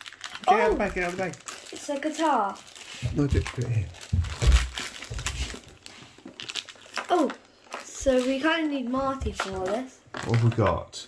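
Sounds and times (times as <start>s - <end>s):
plastic bag crinkling: 0.0s - 8.8s, 10.1s - 10.8s.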